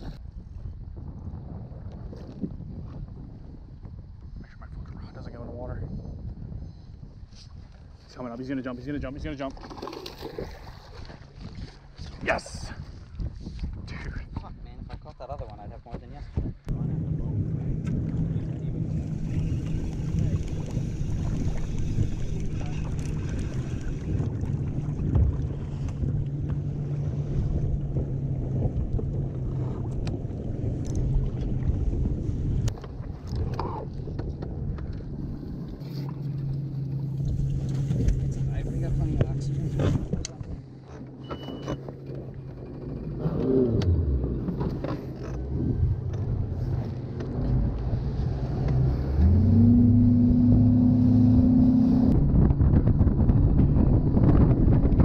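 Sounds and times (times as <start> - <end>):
outboard engine running: 16.7 - 55.0.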